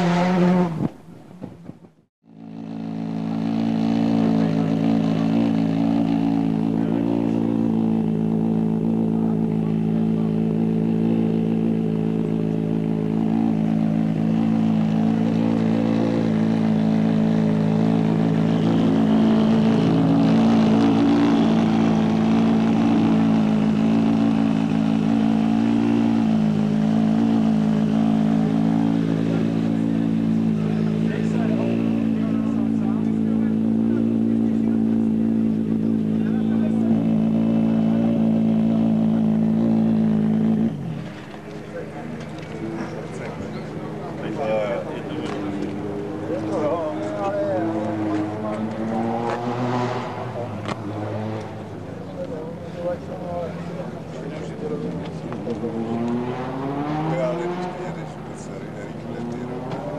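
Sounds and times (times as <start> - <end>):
car engine idling: 1.0 - 59.9.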